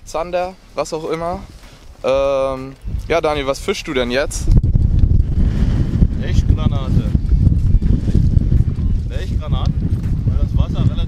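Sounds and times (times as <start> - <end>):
wind buffeting microphone: 1.1 - 11.0.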